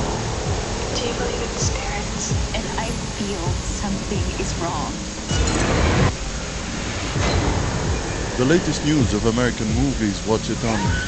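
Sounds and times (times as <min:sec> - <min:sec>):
dense rumble: 0:00.0 - 0:11.0
sudden hit: 0:05.3 - 0:10.4.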